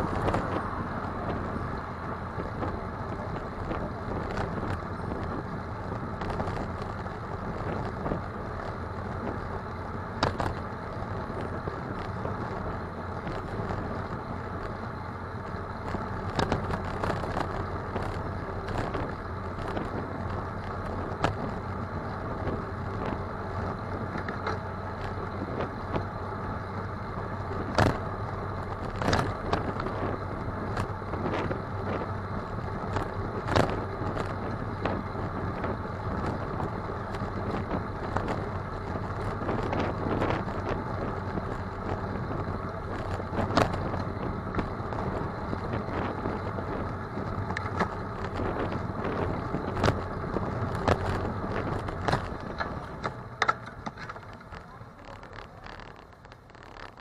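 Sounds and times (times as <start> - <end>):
road rumble: 0.0 - 57.0
bicycle knocks and rattles: 10.2 - 14.7, 27.5 - 32.0, 46.8 - 57.0
wind on microphone: 27.5 - 53.2.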